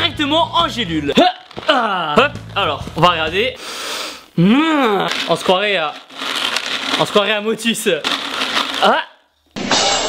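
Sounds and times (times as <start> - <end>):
person saying ah: 4.4 - 5.2
capsules rattling in plastic tub: 5.1 - 9.0.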